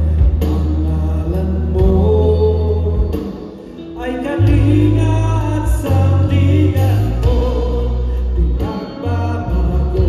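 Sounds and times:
worship band music: 0.0s - 10.0s.

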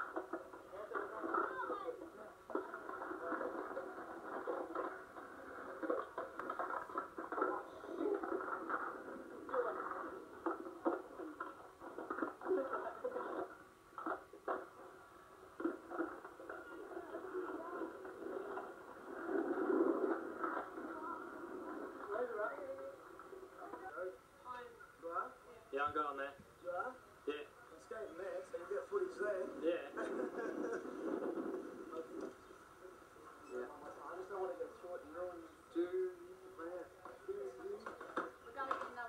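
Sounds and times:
skateboard clacks: 0.0s - 14.9s
skateboard wheels rolling on asphalt: 0.0s - 24.0s, 28.2s - 32.9s
indistinct voices: 0.0s - 24.1s.

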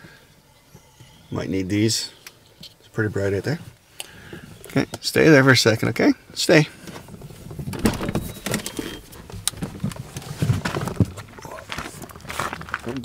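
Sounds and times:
rustling: 6.8s - 13.0s
car door unlatching and opening: 7.6s - 9.6s
clicks and knocks: 7.6s - 10.0s.

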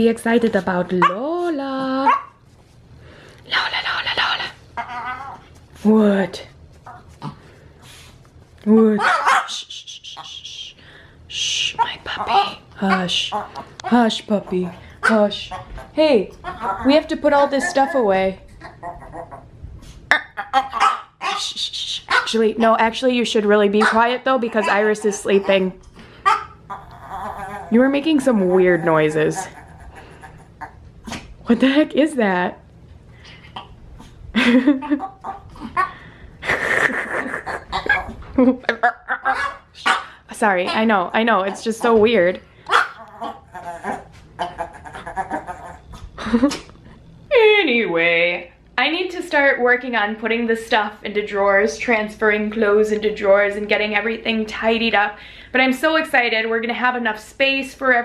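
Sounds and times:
small dog barking: 2.0s - 2.3s, 9.0s - 9.6s, 20.4s - 21.4s, 26.2s - 26.6s, 39.2s - 40.1s, 42.7s - 44.0s
woman shushing: 9.5s - 12.0s
woman laughing breathily: 34.3s - 37.7s.

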